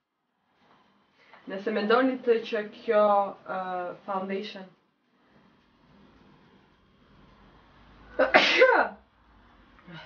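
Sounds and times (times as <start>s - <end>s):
woman sneezing: 8.2s - 9.0s.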